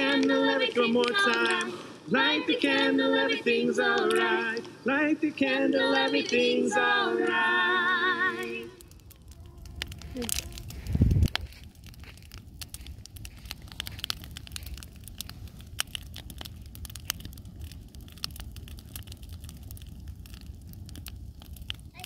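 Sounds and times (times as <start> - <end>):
campfire crackling and popping: 0.0 - 22.0
low steady rumble: 4.7 - 22.0.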